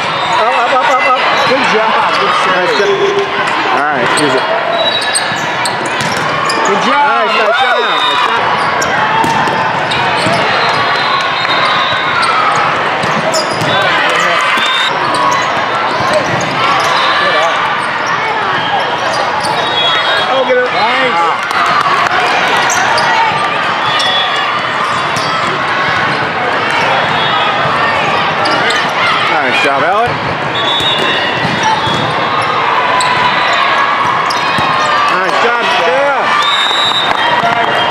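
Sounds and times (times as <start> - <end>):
many voices in a hall: 0.0 - 37.9
volleyballs struck and bouncing: 5.2 - 6.7, 8.7 - 14.8, 30.0 - 32.3, 34.0 - 35.5.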